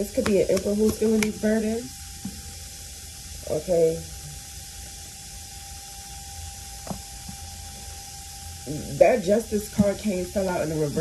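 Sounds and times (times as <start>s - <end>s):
faint constant hum: 0.0s - 11.0s
steady background hiss: 0.0s - 11.0s.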